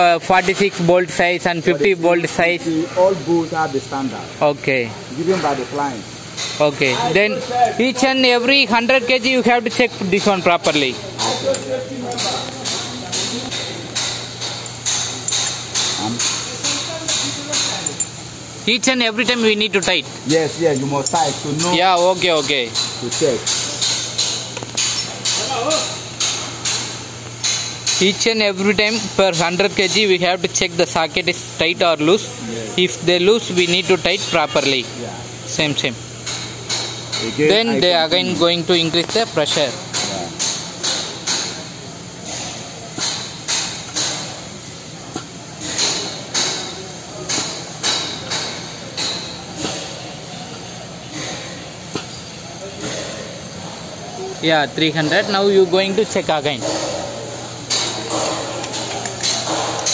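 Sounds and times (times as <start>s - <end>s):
hydraulic pump humming and hissing: 0.0s - 59.9s.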